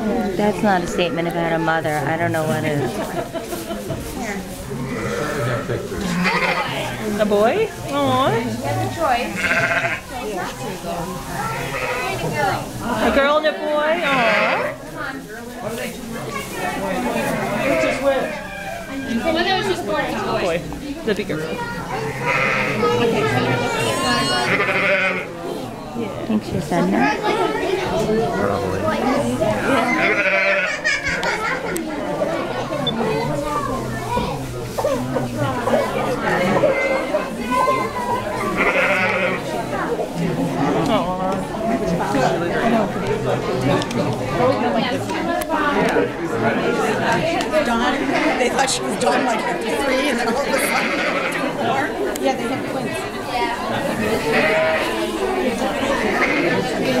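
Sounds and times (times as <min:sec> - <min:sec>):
crowd chattering: 0:00.0 - 0:57.0
people talking and laughing: 0:00.0 - 0:57.0
sheep bleating: 0:04.8 - 0:07.0, 0:09.3 - 0:10.1, 0:14.0 - 0:14.8, 0:22.0 - 0:22.9, 0:24.1 - 0:25.3, 0:29.6 - 0:30.8, 0:38.4 - 0:39.4, 0:50.5 - 0:51.5, 0:54.3 - 0:55.0, 0:56.0 - 0:56.7.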